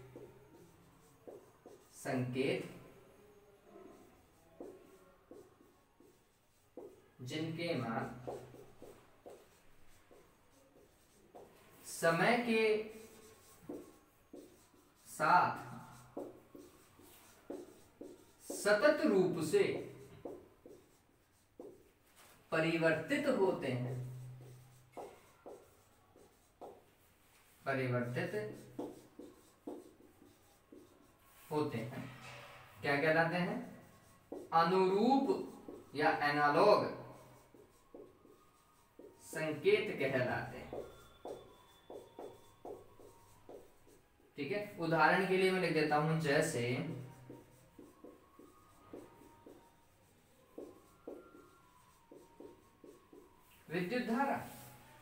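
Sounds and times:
marker pen writing on whiteboard: 0:00.0 - 0:55.0.

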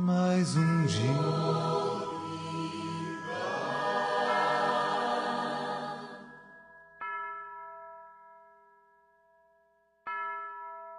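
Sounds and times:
bell-like chime ringing: 0:00.5 - 0:08.6.

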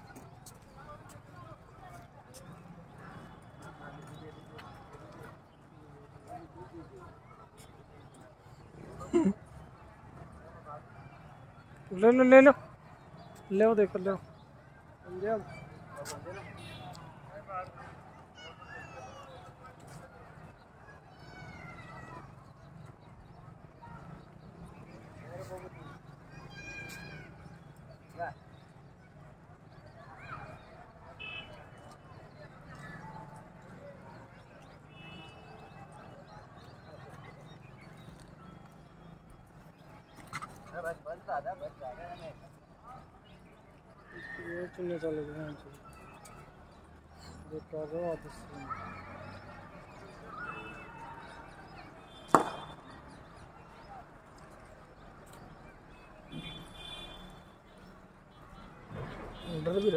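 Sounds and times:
murmur of distant voices: 0:00.0 - 0:59.9
footsteps on concrete: 0:52.3 - 0:52.8.

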